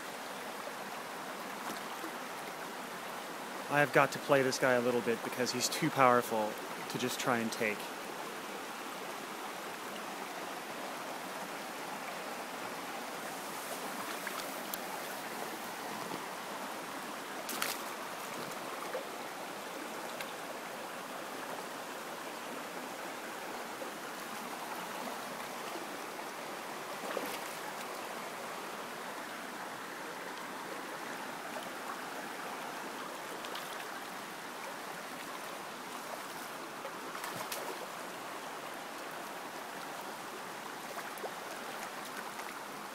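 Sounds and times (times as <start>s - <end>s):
stream running over rocks: 0.0s - 42.9s.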